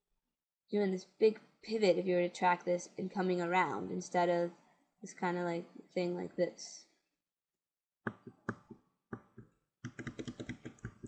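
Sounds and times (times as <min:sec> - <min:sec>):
computer keyboard taps: 0:08.1 - 0:11.0.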